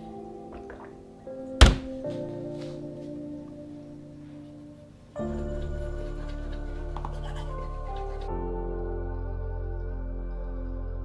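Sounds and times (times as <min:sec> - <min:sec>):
background music of held tones: 0:00.0 - 0:11.0
sharp thunk: 0:01.6 - 0:02.0.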